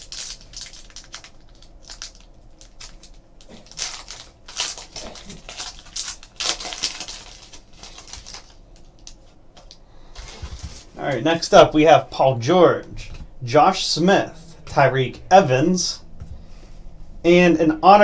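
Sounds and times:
card pack tearing and crinkling: 0:00.0 - 0:09.2.

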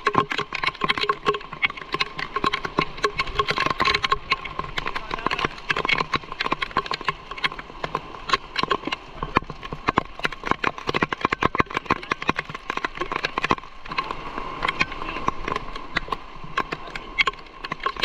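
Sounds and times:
heavy rain on umbrella: 0:00.0 - 0:18.0.

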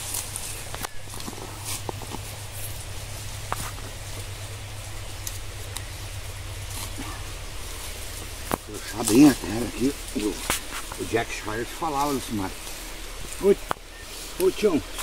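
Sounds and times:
digging tool scraping soil: 0:00.0 - 0:02.8, 0:06.6 - 0:12.7.

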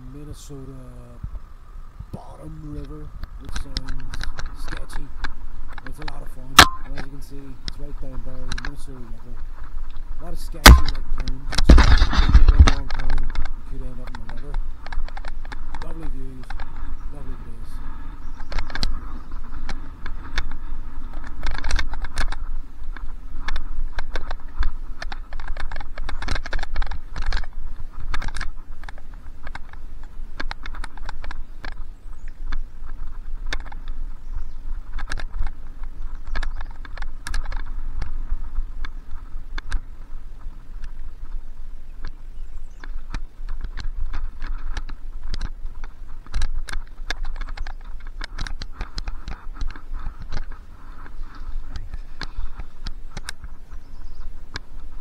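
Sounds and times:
mountain bike rattling: 0:02.9 - 0:40.1, 0:42.3 - 0:55.0.

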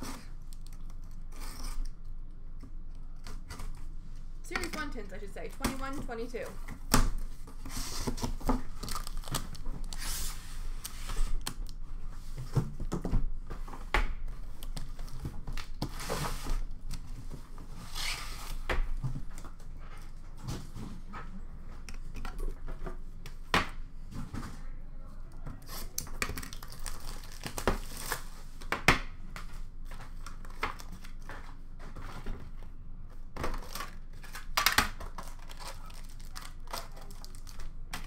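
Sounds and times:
tape and cardboard tearing: 0:00.0 - 0:02.0, 0:25.6 - 0:28.3
cardboard rustling and scraping: 0:14.8 - 0:21.8.

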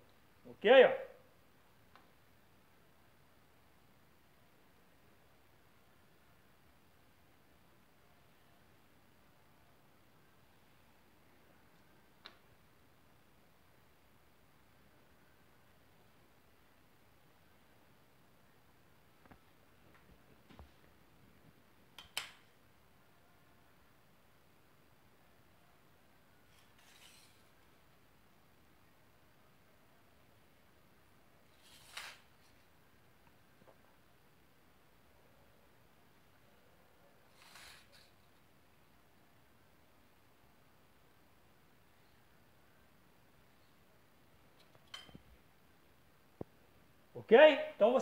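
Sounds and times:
pencil scraping on wall: 0:26.5 - 0:27.6, 0:31.5 - 0:32.7, 0:37.3 - 0:38.2.

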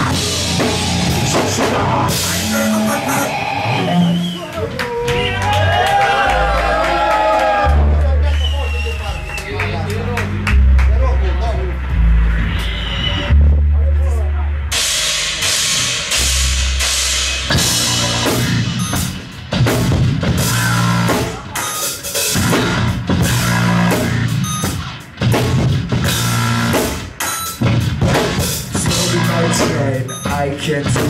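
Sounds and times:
distorted electric guitar: 0:00.0 - 0:04.6, 0:10.1 - 0:31.0
bass guitar: 0:00.0 - 0:31.0
drum kit beat: 0:00.0 - 0:31.0
rock band playing: 0:00.0 - 0:31.0.

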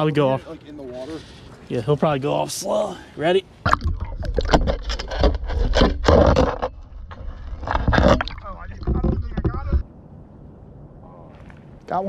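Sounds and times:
muffled underwater rumble: 0:06.8 - 0:09.8.

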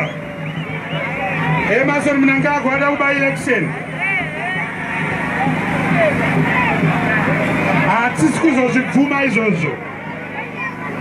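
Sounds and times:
crowd babble: 0:00.0 - 0:11.0
man speaking over loudspeakers: 0:01.6 - 0:04.7, 0:07.8 - 0:09.8.

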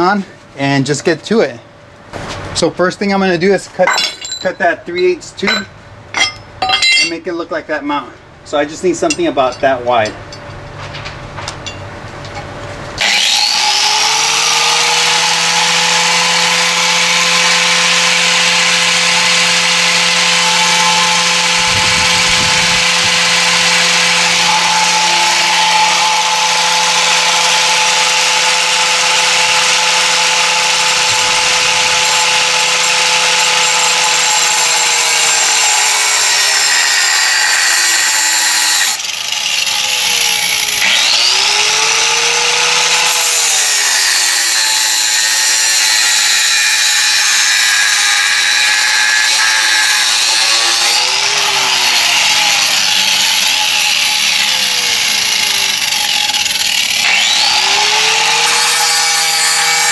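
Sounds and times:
grinder cutting metal tube: 0:13.0 - 0:59.9.

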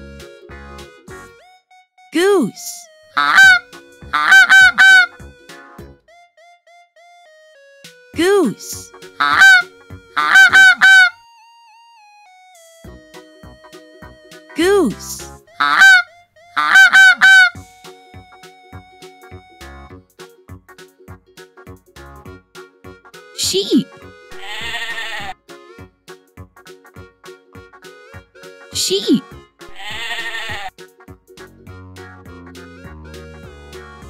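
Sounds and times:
goose honking: 0:03.2 - 0:05.2, 0:09.2 - 0:11.2, 0:15.6 - 0:17.6, 0:23.5 - 0:25.4, 0:28.8 - 0:30.7
faint background music: 0:12.5 - 0:34.0
sheep bleating: 0:24.3 - 0:25.4, 0:29.7 - 0:30.7.

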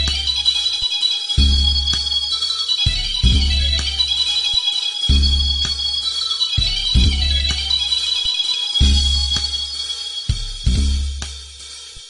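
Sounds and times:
deep bass notes: 0:00.0 - 0:00.3, 0:03.2 - 0:04.0, 0:06.8 - 0:07.6, 0:10.6 - 0:11.2
cymbals and hi-hat: 0:00.0 - 0:12.0.

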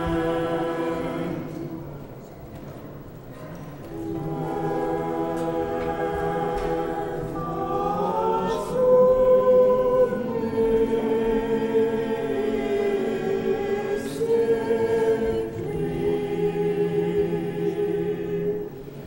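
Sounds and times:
choir singing a hymn: 0:00.0 - 0:02.3, 0:03.8 - 0:19.0.

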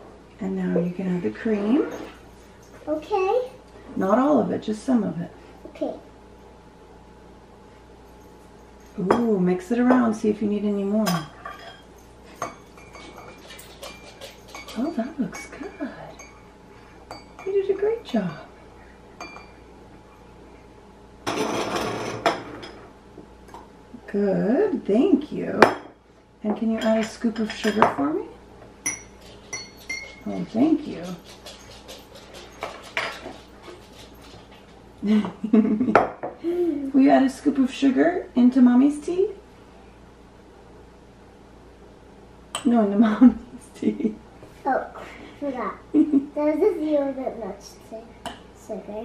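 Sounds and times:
spoon clinking against teacup: 0:16.2 - 0:16.5, 0:19.2 - 0:19.6, 0:28.8 - 0:30.3.

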